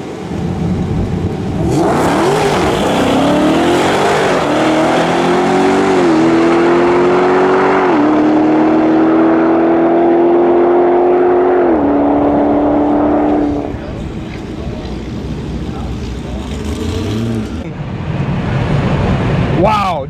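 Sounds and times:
car engine accelerating hard: 0.3 - 19.6.

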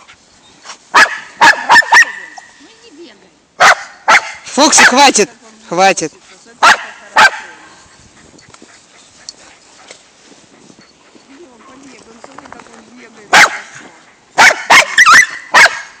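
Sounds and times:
dog barking: 0.9 - 2.4, 3.6 - 5.0, 6.6 - 7.6, 13.3 - 13.7, 14.4 - 16.0.

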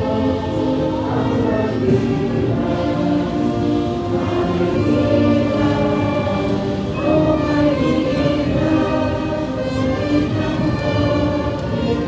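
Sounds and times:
brass band playing: 0.0 - 12.0
crowd singing in unison: 0.0 - 12.0.

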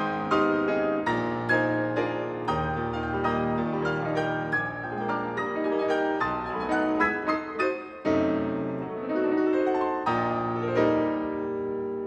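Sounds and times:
solo grand piano chords: 0.0 - 12.0.

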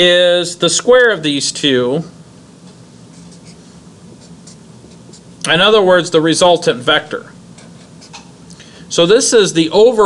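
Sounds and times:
low room hum: 0.0 - 10.0
marker scratching on whiteboard: 3.1 - 5.4.

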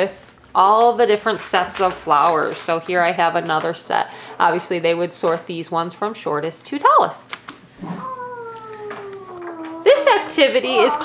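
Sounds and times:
voice-like call sliding down in pitch: 7.8 - 9.9.

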